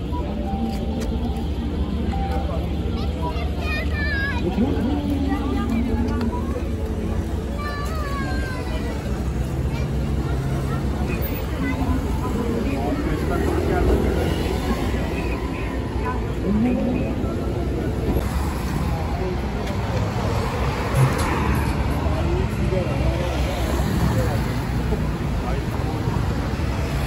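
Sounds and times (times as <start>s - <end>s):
motor traffic rumble: 0.0s - 27.0s
passers-by talking: 0.0s - 27.0s.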